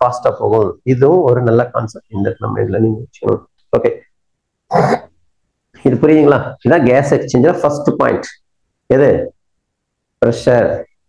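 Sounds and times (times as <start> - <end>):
person speaking: 0.0 - 4.1, 5.8 - 9.4
person clearing throat: 4.7 - 5.1.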